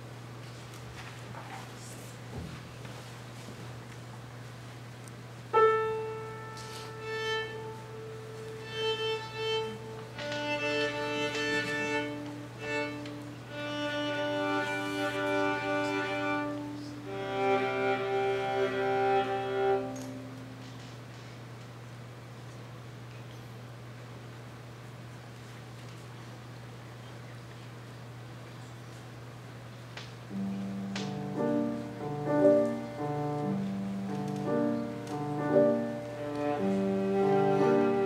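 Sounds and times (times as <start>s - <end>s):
piano note: 5.5s - 8.4s
violas bowing held notes: 5.9s - 20.2s, 34.7s - 38.0s.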